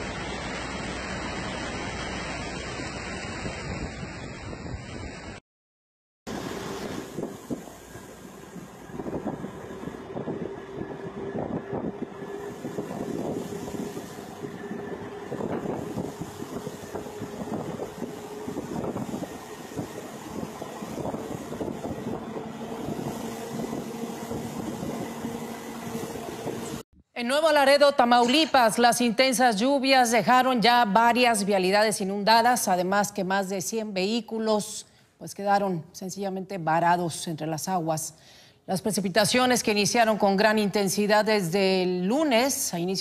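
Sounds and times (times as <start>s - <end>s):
continuous rushing noise: 0.0s - 5.4s, 6.3s - 26.8s
vehicle engine running: 6.3s - 26.8s.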